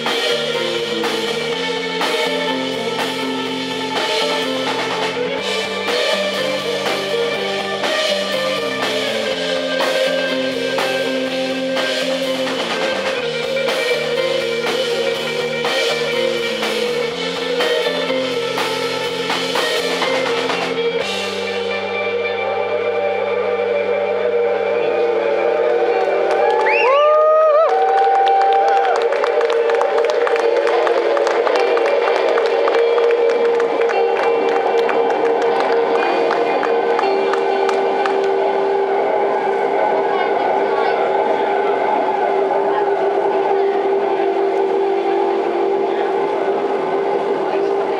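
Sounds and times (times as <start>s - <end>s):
electric guitar feedback drone: 0.0s - 47.9s.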